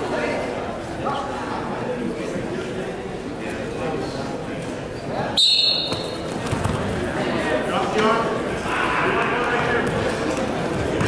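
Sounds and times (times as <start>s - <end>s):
crowd voices and shouts: 0.0s - 11.0s
referee's whistle blast: 5.4s - 6.2s.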